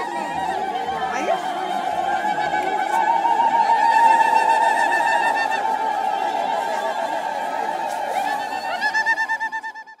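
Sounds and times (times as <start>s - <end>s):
women ululating in a crowd: 0.0s - 10.0s.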